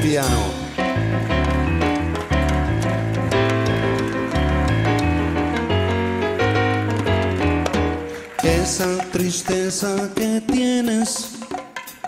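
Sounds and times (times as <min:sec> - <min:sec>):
electric keyboard chords: 0:00.0 - 0:09.2
drum kit: 0:00.0 - 0:12.0
hand drums: 0:00.0 - 0:12.0.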